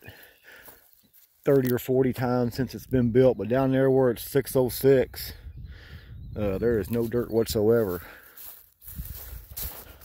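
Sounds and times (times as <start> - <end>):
footsteps crunching on gravelly dirt: 0.0 - 3.1, 6.5 - 10.0.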